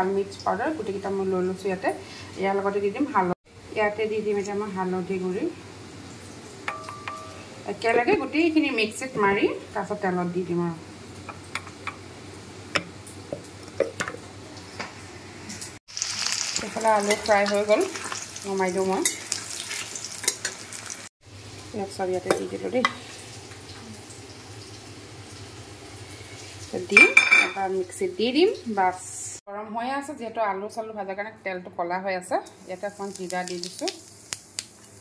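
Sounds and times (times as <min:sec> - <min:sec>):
oil sizzling: 0:00.0 - 0:29.4, 0:32.3 - 0:35.0
spoon clinking in steel bowl: 0:06.7 - 0:07.4
kitchen clatter: 0:26.9 - 0:27.7.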